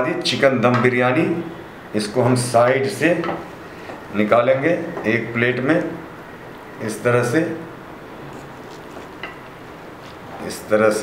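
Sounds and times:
low background hiss: 0.0 - 11.0.

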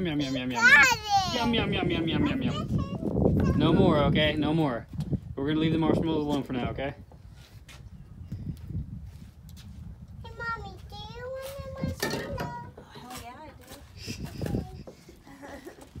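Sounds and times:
child babbling and calling out: 0.2 - 1.5, 2.3 - 3.8
wind rumble on microphone: 0.8 - 16.0.

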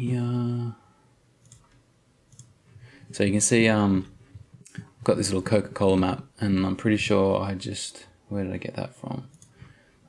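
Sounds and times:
computer mouse clicks: 1.4 - 2.6, 9.3 - 9.6.

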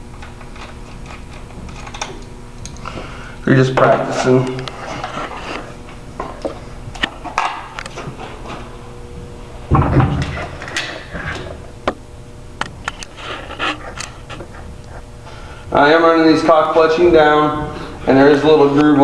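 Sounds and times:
heavy thump: 9.7 - 10.4.

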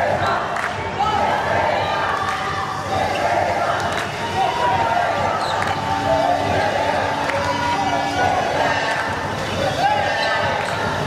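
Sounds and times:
players' voices echoing: 0.0 - 11.0
sneakers squeaking: 4.7 - 11.0.

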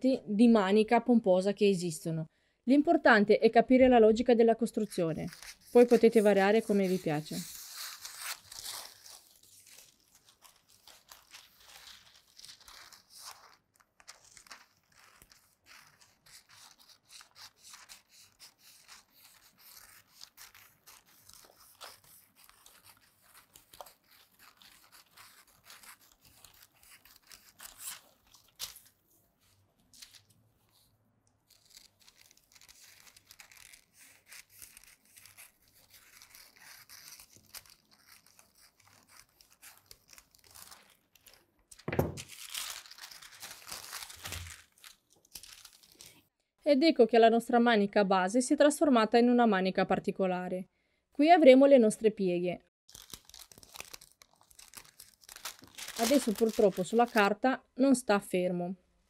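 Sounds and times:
shears cutting paper: 4.8 - 28.9, 31.5 - 41.4, 42.2 - 46.1, 52.9 - 57.3
paper crinkling and rustling: 4.8 - 46.2, 52.9 - 57.4.

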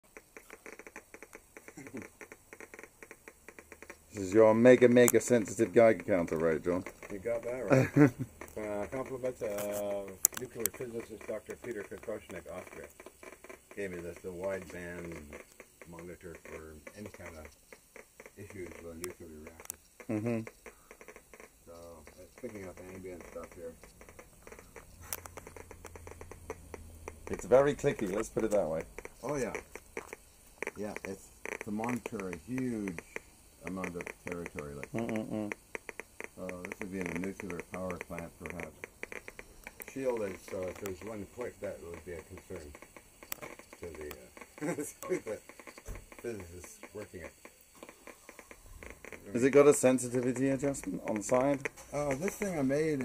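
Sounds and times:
geiger counter clicking: 0.0 - 53.0.

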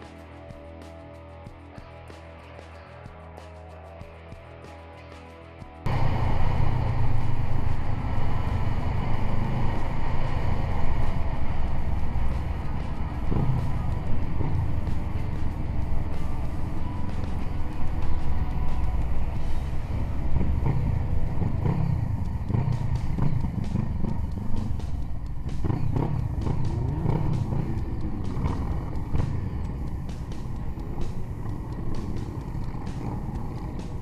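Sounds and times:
motorcycle engines rumbling: 0.0 - 34.0.

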